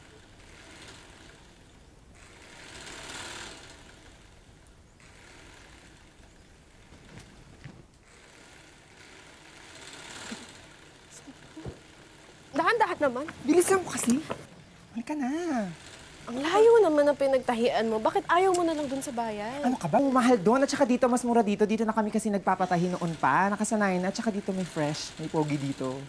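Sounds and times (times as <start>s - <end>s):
sewing machine running: 0.1s - 4.4s, 5.0s - 6.8s, 8.1s - 14.5s, 15.5s - 26.0s.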